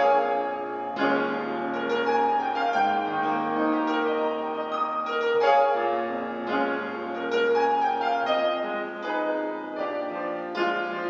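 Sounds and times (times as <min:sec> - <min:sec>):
slow keyboard chords: 0:00.0 - 0:11.0.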